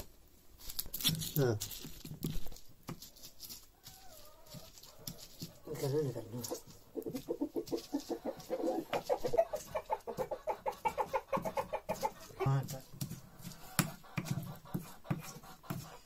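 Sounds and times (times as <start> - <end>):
hen clucking: 3.2 - 16.0.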